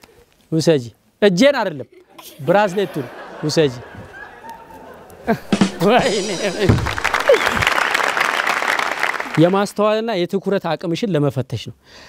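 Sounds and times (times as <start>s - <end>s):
person laughing: 5.2s - 7.8s
studio audience applauding: 5.4s - 9.8s.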